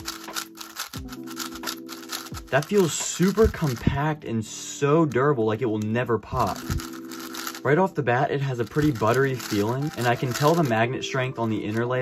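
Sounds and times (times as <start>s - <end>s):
plastic puzzle cube clicking: 0.0s - 3.9s, 5.7s - 7.7s, 8.6s - 10.8s
background music: 0.0s - 12.0s.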